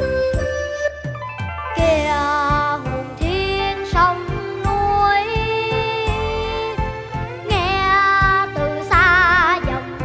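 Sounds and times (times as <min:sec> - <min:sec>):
backing music with drum beats: 0:00.0 - 0:10.0.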